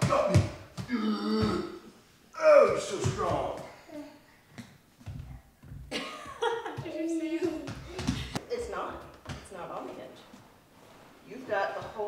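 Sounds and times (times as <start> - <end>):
barefoot footsteps on wooden floor: 2.7 - 3.8, 4.5 - 10.6.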